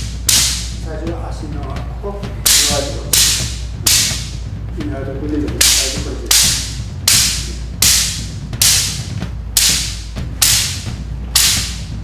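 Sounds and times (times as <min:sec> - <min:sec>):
bamboo rods slapping body: 0:00.0 - 0:01.8, 0:02.4 - 0:04.5, 0:05.2 - 0:12.0.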